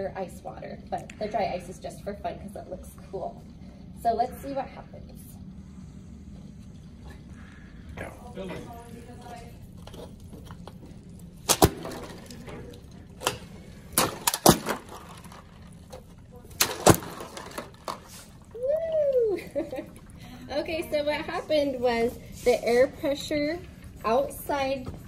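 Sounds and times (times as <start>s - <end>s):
cans imploding with sharp cracks: 11.4s - 12.4s, 13.2s - 15.4s, 16.6s - 18.0s.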